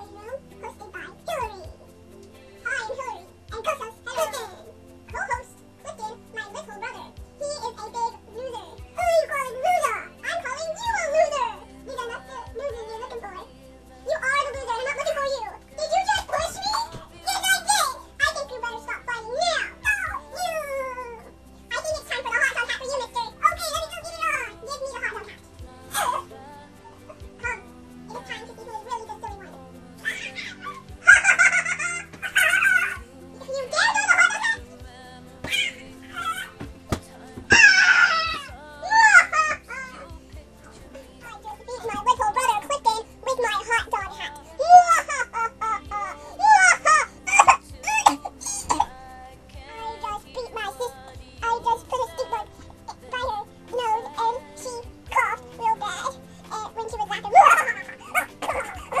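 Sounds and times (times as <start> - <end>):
background music: 0.0 - 59.0
girl mock crying: 25.9 - 28.3, 30.0 - 34.7, 35.4 - 36.7, 37.3 - 40.1, 43.4 - 49.0, 57.2 - 59.0
person whining call: 35.4 - 40.1.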